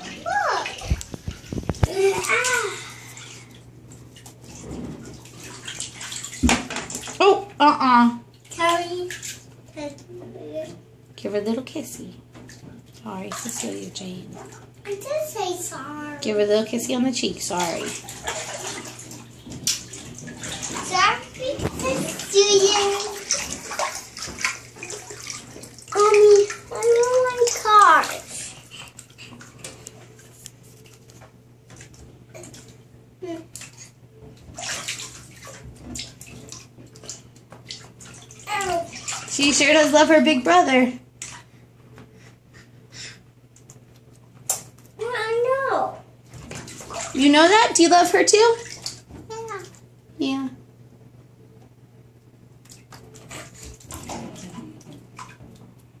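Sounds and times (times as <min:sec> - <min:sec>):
bath water splashing: 0:00.0 - 0:50.0, 0:52.4 - 0:56.0.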